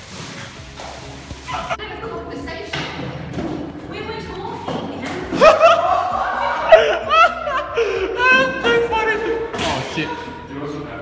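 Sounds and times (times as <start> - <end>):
excited voices shrieking: 5.4 - 7.6.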